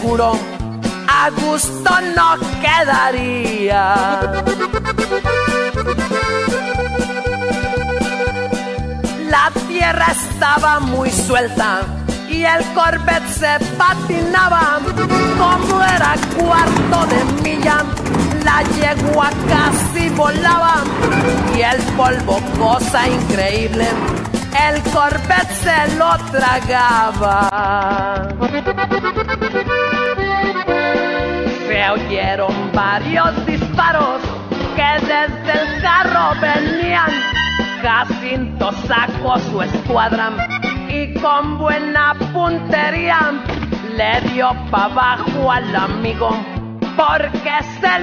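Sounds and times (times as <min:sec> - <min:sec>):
accordion playing: 0:04.2 - 0:09.2, 0:13.6 - 0:27.5, 0:28.4 - 0:31.8, 0:40.4 - 0:40.9
bass notes and drum beat: 0:09.8 - 0:35.2.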